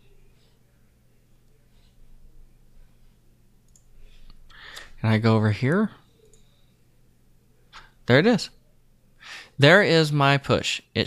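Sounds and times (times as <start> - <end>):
low steady hum: 0.0 - 11.0
computer mouse clicks: 3.6 - 4.9, 6.2 - 6.5.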